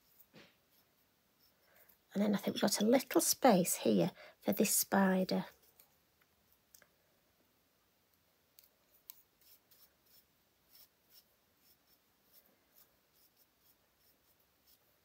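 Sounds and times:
paintbrush dabbing on paper: 0.0s - 1.9s, 8.6s - 15.0s.

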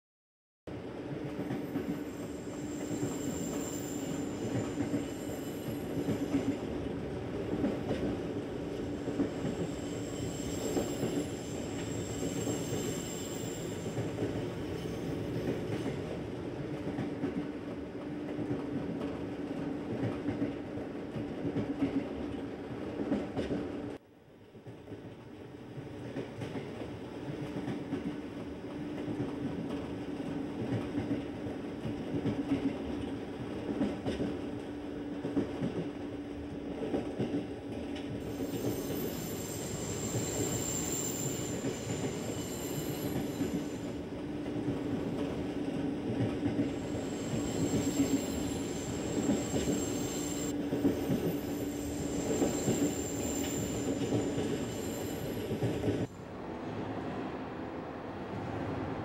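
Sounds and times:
high wheel squeal: 2.0s - 6.7s, 9.2s - 16.0s, 38.2s - 44.0s, 46.7s - 56.1s.

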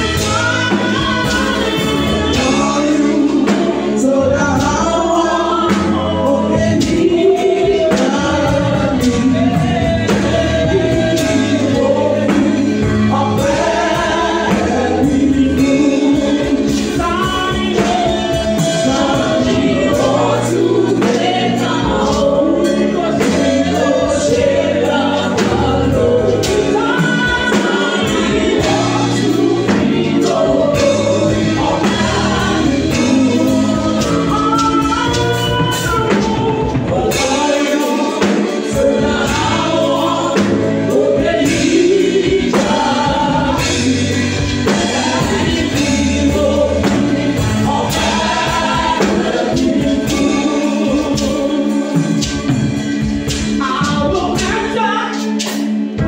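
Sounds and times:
steady bass: 0.0s - 54.7s
band playing: 0.0s - 56.0s
percussion beat: 0.0s - 56.0s.

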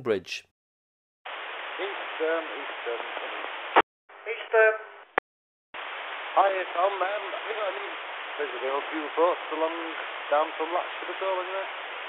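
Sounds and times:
person talking over radio: 0.0s - 0.4s
radio static hiss: 1.3s - 5.1s, 5.8s - 12.0s.

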